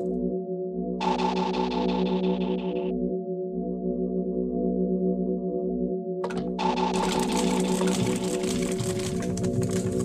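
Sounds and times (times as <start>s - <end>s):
background music: 0.0s - 10.0s
paper pages rustling: 6.2s - 10.0s.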